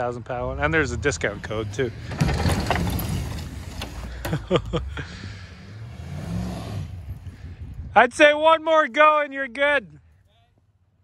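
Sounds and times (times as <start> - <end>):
truck engines under load: 0.0 - 8.1.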